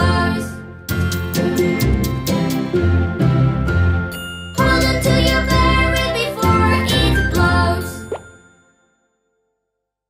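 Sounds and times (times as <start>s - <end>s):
nursery rhyme song: 0.0s - 9.0s.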